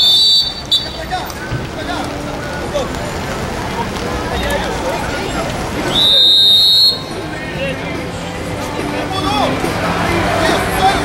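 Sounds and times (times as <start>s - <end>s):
referee's whistle long blast: 0.0s - 1.0s, 5.9s - 7.2s.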